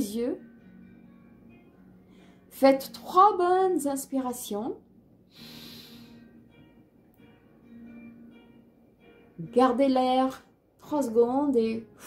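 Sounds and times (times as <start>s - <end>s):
soft music with long held notes: 0.0s - 12.0s
person breathing in deeply: 5.3s - 6.3s.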